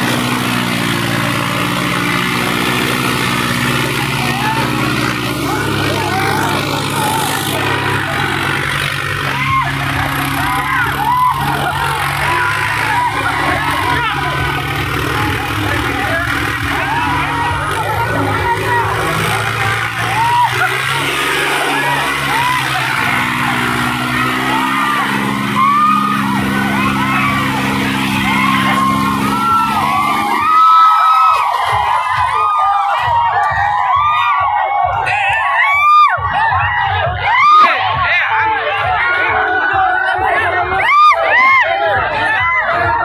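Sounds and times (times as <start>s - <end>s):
crowd shouting and cheering: 0.0s - 43.0s
tractor diesel engine droning: 0.0s - 43.0s.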